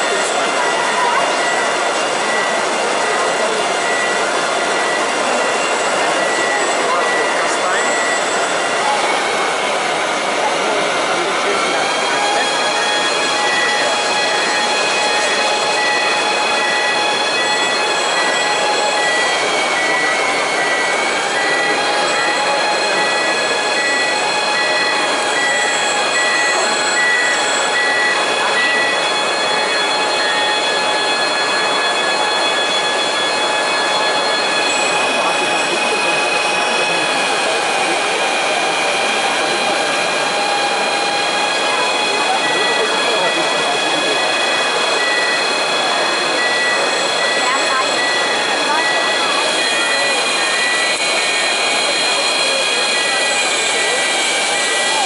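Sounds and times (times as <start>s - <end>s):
crowd murmur: 0.0s - 55.0s
electric motors whining: 0.0s - 55.0s.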